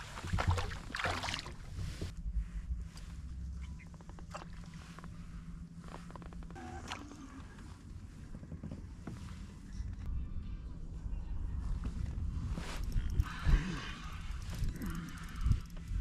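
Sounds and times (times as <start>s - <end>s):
low steady hum: 0.0s - 16.0s.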